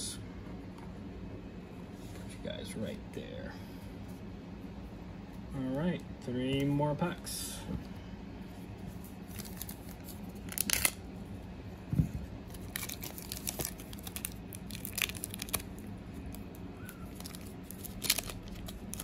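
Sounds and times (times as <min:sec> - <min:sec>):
foil wrapper crinkling and tearing: 0:09.0 - 0:11.0, 0:12.4 - 0:19.0.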